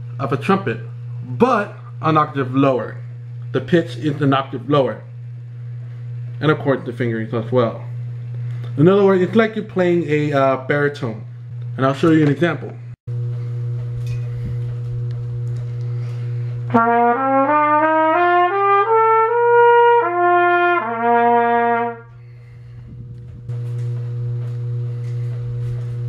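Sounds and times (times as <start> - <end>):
steady electrical hum: 0.0 - 26.0
cornet playing notes: 16.7 - 22.2.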